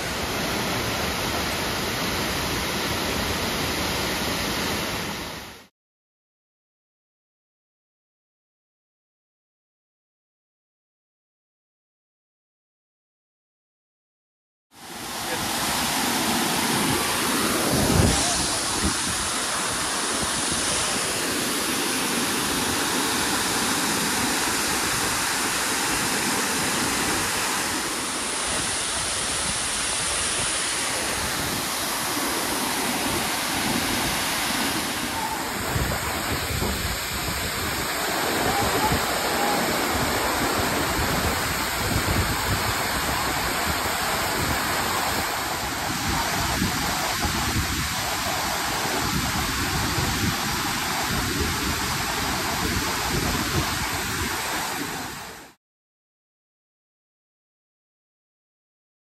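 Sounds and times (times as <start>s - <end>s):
waterfall rushing: 0.0s - 5.7s, 14.8s - 55.6s.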